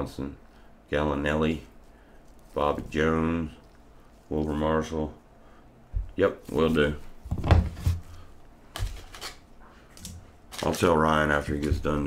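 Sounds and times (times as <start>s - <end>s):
low steady hum: 0.0s - 12.0s
cards and plastic rustling: 7.8s - 12.0s.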